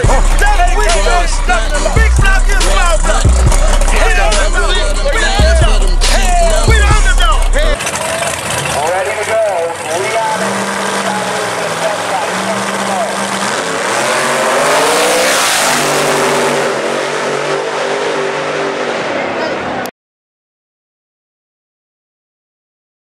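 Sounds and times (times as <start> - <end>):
voices: 0.0 - 15.5, 19.0 - 19.9
drag race car engine: 0.0 - 19.9.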